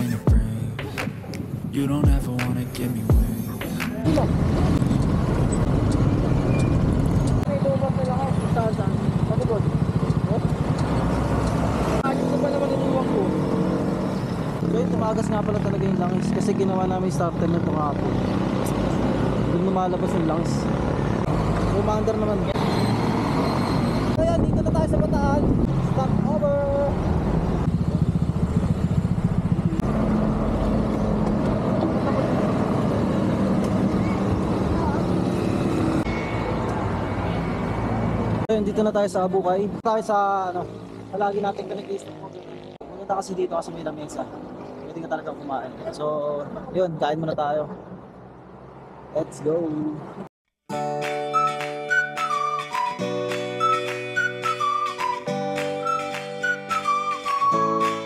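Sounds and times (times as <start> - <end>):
scooter engines running: 3.6 - 24.1, 25.7 - 38.4.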